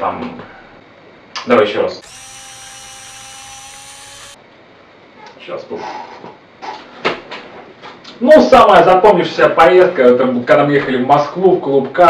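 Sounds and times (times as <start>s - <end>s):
static whirring hiss: 1.2s - 4.8s.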